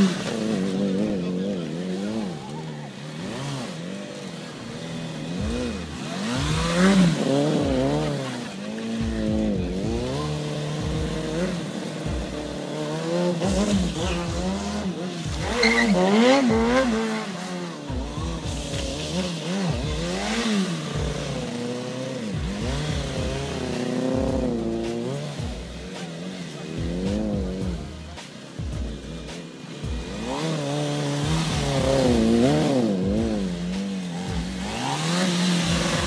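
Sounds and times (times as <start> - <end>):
small motorcycle engine revving: 0.0 - 36.0.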